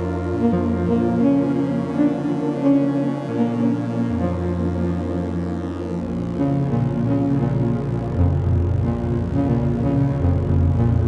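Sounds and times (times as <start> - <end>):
low synthesizer notes with reverb: 0.0 - 11.0.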